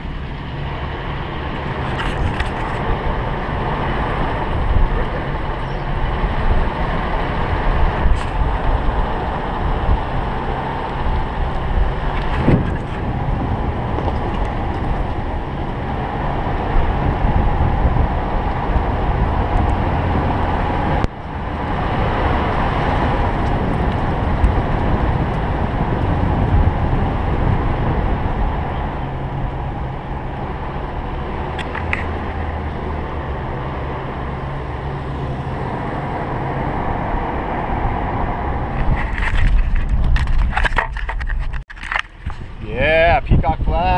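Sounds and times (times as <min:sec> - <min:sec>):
car engine and tyre rumble: 0:00.0 - 0:43.9.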